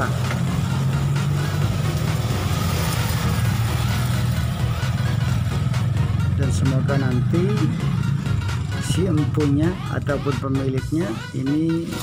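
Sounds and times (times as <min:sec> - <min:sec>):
low engine hum: 0:00.0 - 0:09.9.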